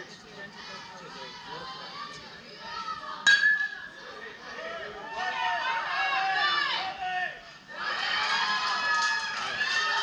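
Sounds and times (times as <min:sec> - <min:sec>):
metal bat pinging ball: 0:03.3 - 0:03.8.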